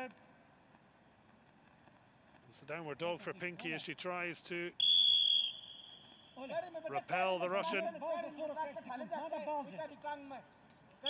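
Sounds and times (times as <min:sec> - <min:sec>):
referee whistle blast: 0:04.8 - 0:06.4.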